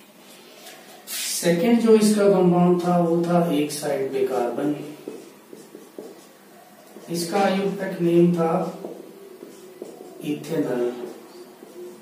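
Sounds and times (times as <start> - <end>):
marker pen scratching on board: 2.0 - 12.0.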